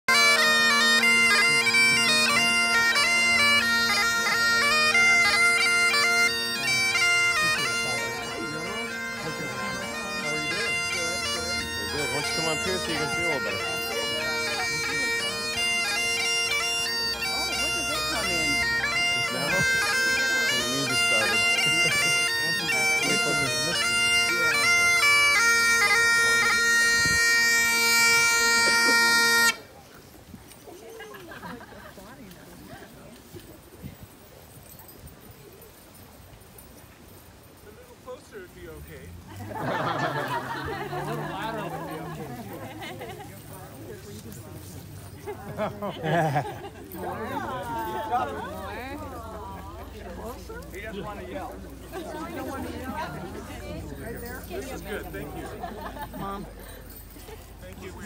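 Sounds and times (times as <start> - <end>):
bagpipe drone: 0.1 - 29.7
bagpipes playing marching tune: 0.1 - 29.7, 38.2 - 58.0.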